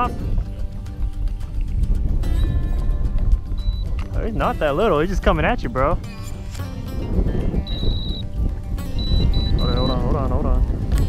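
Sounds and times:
background music: 0.0 - 11.0
wind rumbling on microphone: 0.0 - 11.0.

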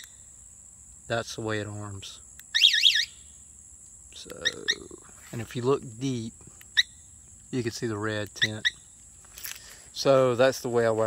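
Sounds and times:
motorcycle alarm warbling chirp: 0.0 - 0.3, 2.5 - 3.4, 4.4 - 5.0, 6.7 - 7.1, 8.4 - 8.9.

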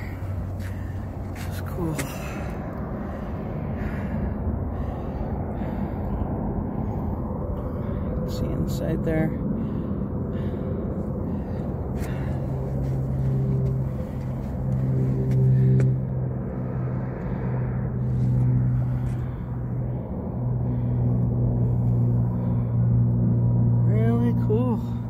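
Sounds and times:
vehicle engine humming: 0.0 - 25.0.

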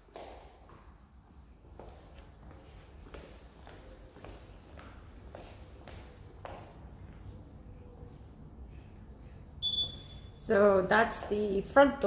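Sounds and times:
faint room noise: 0.0 - 12.0
high-pitched electronic beep: 9.6 - 10.4.

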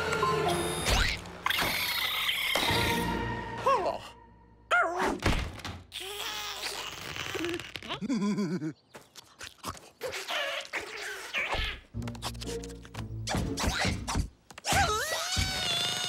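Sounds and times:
cartoon animal squeals and grunts: 0.8 - 3.0, 5.9 - 8.6, 10.0 - 11.9, 13.6 - 16.0.

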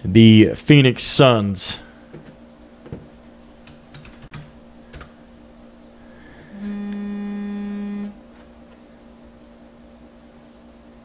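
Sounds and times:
faint hum: 0.0 - 11.0
steady buzzing tone: 2.5 - 11.0.

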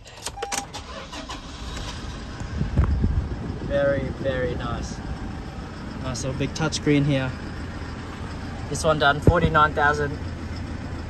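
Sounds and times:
low engine rumble: 0.0 - 11.0
short beep: 0.3 - 0.7.

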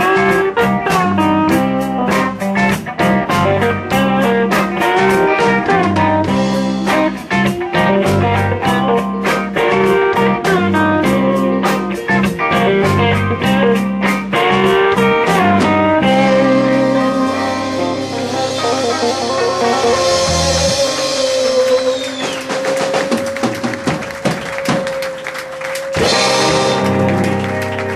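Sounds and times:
live blues band playing: 0.0 - 27.9.

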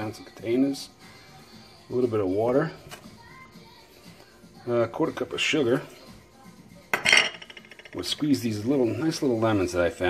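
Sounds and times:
sugar rattling: 6.9 - 8.2.

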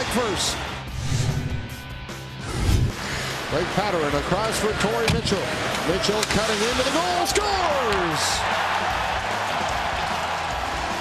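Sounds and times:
deep hit: 0.9 - 3.0
whoosh: 0.9 - 3.1.

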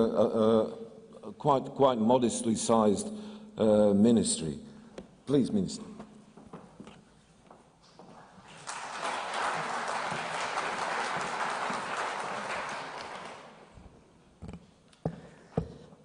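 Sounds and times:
audience applauding: 8.4 - 13.8.

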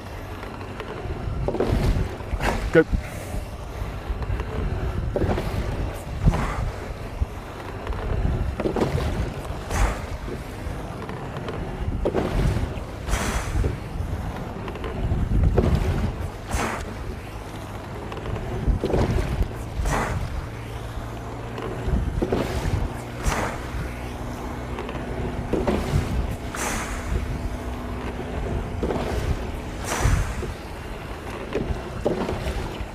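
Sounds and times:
wind noise on microphone: 1.0 - 17.3, 18.2 - 32.9.

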